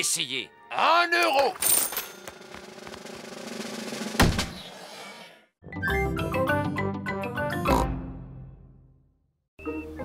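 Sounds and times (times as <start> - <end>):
loud hammer thump: 4.1 - 4.6.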